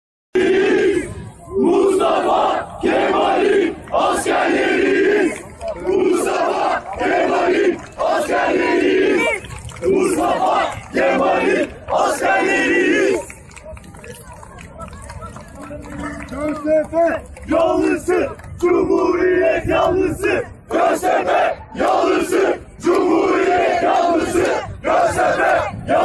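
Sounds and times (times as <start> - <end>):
crowd chanting in unison: 0.4 - 13.3, 17.5 - 26.0.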